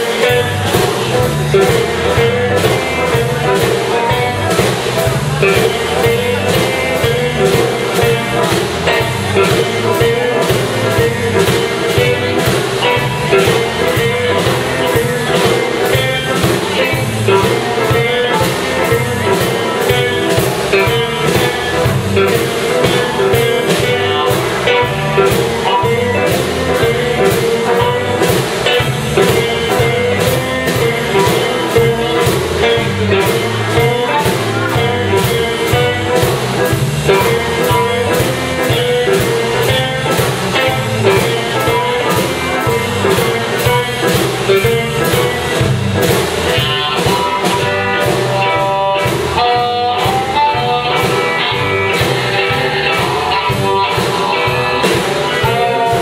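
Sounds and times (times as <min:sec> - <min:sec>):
bass guitar: 0:00.0 - 0:56.0
drum kit steady beat: 0:00.0 - 0:56.0
electric guitars: 0:00.0 - 0:56.0.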